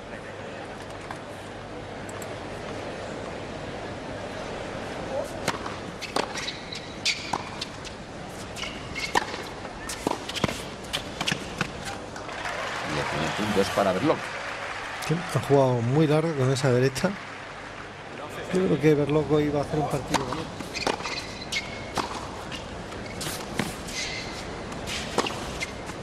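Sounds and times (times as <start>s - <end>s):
murmur of crowd: 0.0s - 6.0s, 11.7s - 20.9s
tennis ball bouncing: 5.4s - 12.3s, 20.1s - 26.0s.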